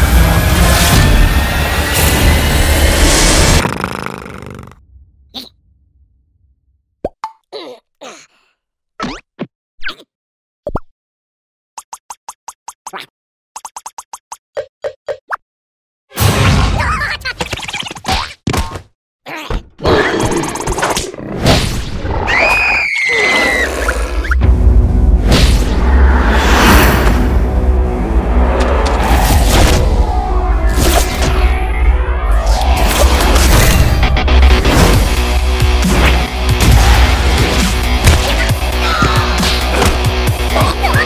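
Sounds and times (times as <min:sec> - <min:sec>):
high-pitched cartoon scream: 0:22.2 - 0:23.9
low rumble: 0:24.4 - 0:30.8.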